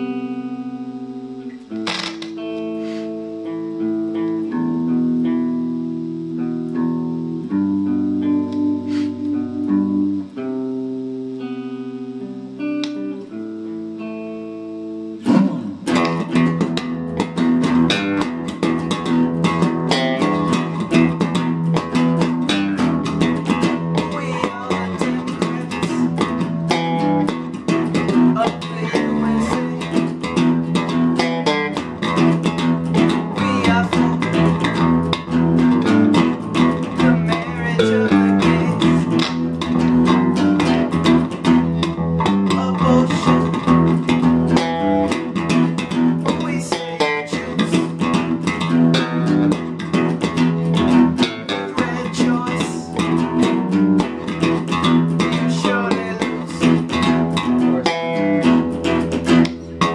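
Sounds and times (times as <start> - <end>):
bass guitar: 0.0 - 59.9
electric guitar: 0.0 - 59.9.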